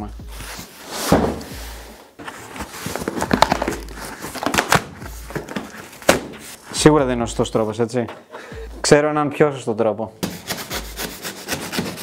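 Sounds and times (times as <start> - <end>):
cardboard and tape ripping: 2.2 - 6.4.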